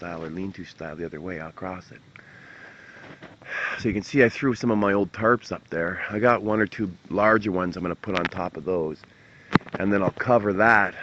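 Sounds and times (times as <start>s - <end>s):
man speaking: 0.0s - 2.1s, 3.5s - 9.0s, 9.7s - 11.0s
man sniffing: 2.2s - 3.8s.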